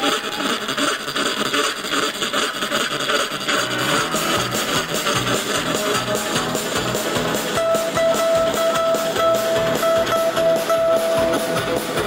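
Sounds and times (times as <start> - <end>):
electric bass: 3.4 - 12.0
live band playing: 3.4 - 12.0
drum kit: 3.6 - 12.0.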